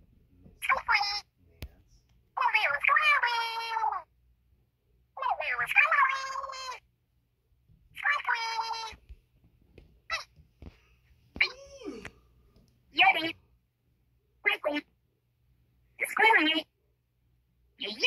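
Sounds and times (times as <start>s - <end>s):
squeaky high character voices: 0.6s - 1.3s, 2.4s - 4.1s, 5.2s - 6.8s, 8.0s - 9.0s, 10.1s - 10.3s, 11.4s - 12.2s, 13.0s - 13.4s, 14.4s - 14.9s, 16.0s - 16.8s, 17.8s - 18.0s.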